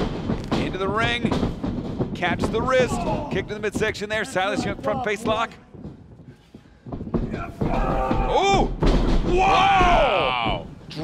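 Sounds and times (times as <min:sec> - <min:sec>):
loud drawn-out shouts: 0:07.3 - 0:08.7, 0:09.3 - 0:10.6.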